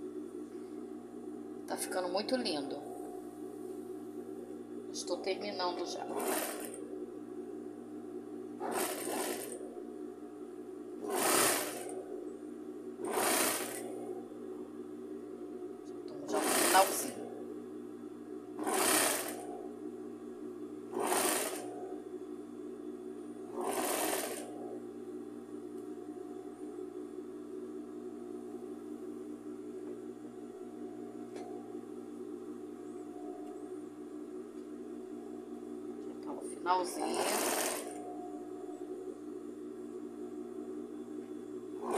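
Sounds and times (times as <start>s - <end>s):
steady hum: 0.0s - 41.9s
sewing machine stitching: 5.9s - 6.9s, 8.6s - 9.8s, 11.0s - 12.1s, 13.0s - 14.2s, 16.2s - 17.3s, 18.6s - 19.7s, 20.9s - 22.0s, 23.5s - 24.7s, 36.9s - 38.2s.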